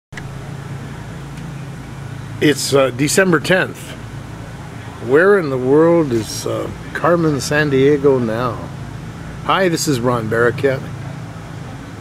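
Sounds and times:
faint outdoor hiss: 0.2s - 12.0s
low mechanical hum: 0.2s - 12.0s.

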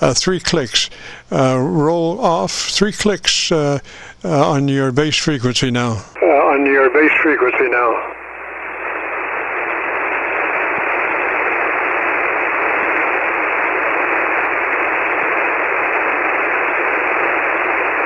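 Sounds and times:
radio receiver hiss: 5.2s - 18.0s.

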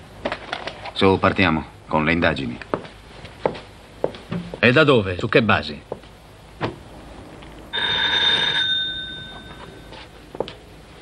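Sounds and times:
electric doorbell ringing: 7.7s - 10.0s.

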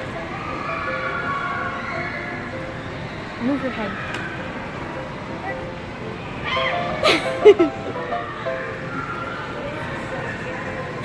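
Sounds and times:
faint background music: 0.0s - 11.0s
mall ambience: 0.0s - 11.0s.

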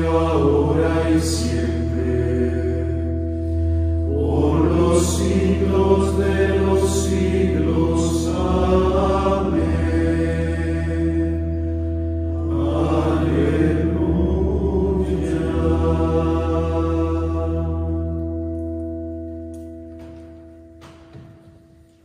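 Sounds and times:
men singing a chanted hymn: 0.0s - 3.3s, 3.9s - 11.7s, 12.4s - 18.2s
sustained instrument chords: 0.0s - 22.0s.

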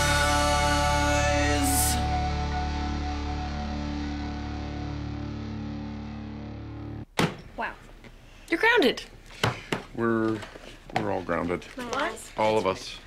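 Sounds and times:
distorted electric guitar chord: 0.0s - 7.0s.

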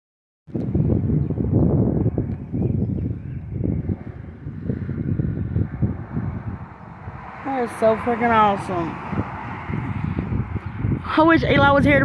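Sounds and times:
wind buffeting microphone: 0.5s - 12.0s.

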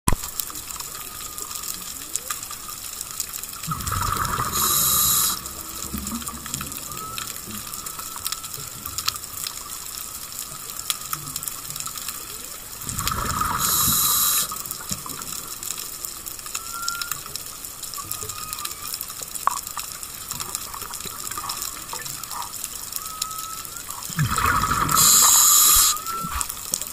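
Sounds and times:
steady crackle with clicks: 0.1s - 26.9s
exhaled bubbles rushing: 3.4s - 11.6s, 12.6s - 17.2s, 23.2s - 26.5s.

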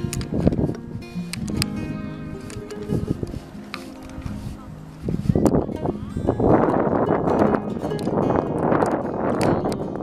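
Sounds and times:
footsteps in sand: 0.0s - 5.7s
wind buffeting microphone: 0.0s - 10.0s.

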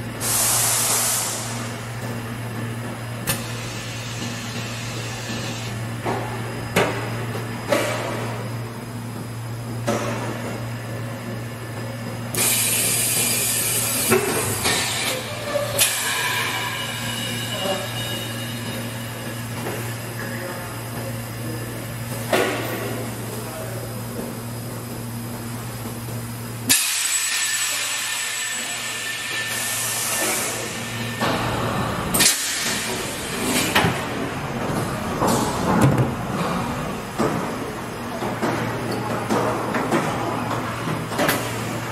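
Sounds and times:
compressed air hissing: 0.2s - 1.7s
pneumatic clunks: 3.2s - 8.4s, 11.8s - 20.0s, 26.7s - 41.8s.

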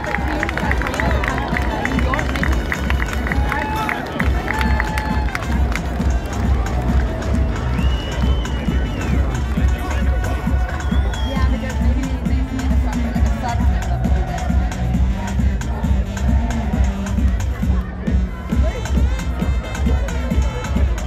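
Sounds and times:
crowd voices and shouts: 0.0s - 21.0s
music with bass beat over loudspeaker: 0.0s - 21.0s.

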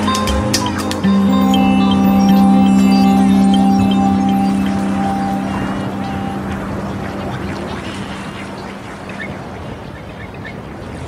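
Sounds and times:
song held notes: 0.0s - 9.4s
sea and surf: 0.0s - 11.0s.

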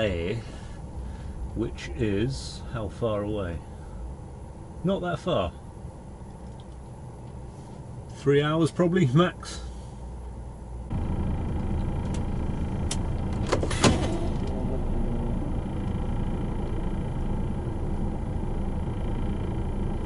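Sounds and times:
diesel truck engine rumble: 0.0s - 20.0s.

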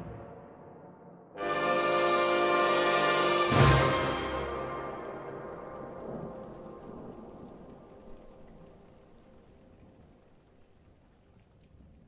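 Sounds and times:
orchestral chord ringing: 1.4s - 6.8s.

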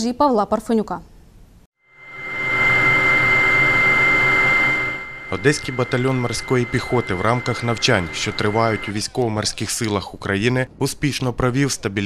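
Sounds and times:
motor whine: 1.9s - 9.1s.

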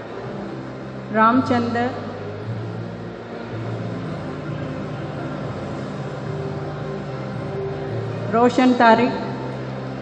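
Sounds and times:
large hall background noise: 0.0s - 10.0s.

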